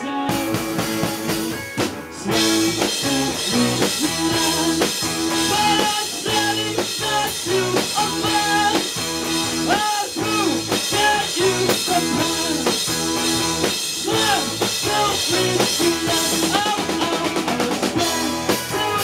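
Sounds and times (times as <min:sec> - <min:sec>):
rock band playing live: 0:00.0 - 0:19.0.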